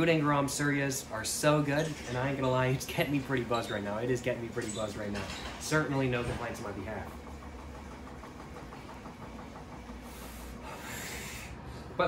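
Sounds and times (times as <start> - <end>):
laundry machines humming: 0.0 - 12.0.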